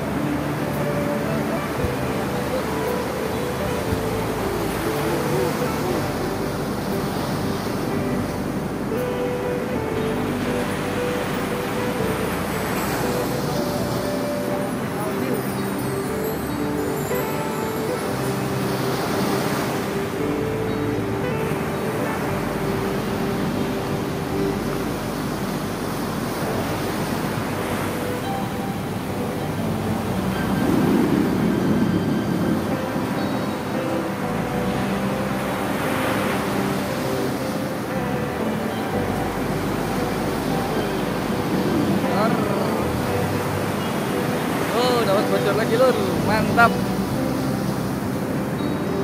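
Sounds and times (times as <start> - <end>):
background music with held notes: 0.0 - 49.0
surf breaking on shore: 0.0 - 49.0.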